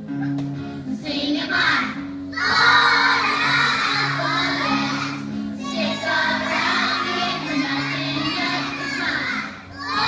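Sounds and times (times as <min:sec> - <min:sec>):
young children singing: 0:00.9 - 0:10.0.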